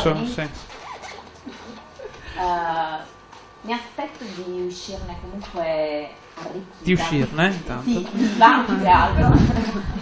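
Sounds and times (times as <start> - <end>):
person speaking: 6.8 - 9.3.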